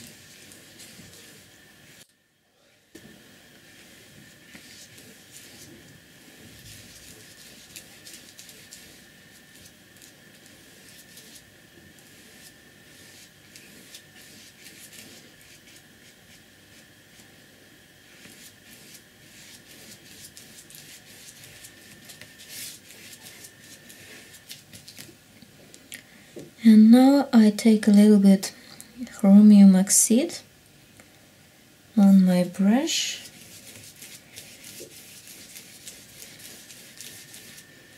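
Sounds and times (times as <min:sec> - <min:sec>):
brush scratching on paper: 0:00.0 - 0:02.0, 0:03.6 - 0:17.4, 0:18.0 - 0:25.1, 0:32.9 - 0:37.9.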